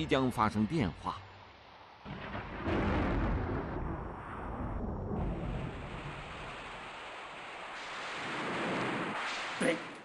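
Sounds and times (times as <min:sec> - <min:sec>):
thunder rumbling: 0:02.1 - 0:10.0.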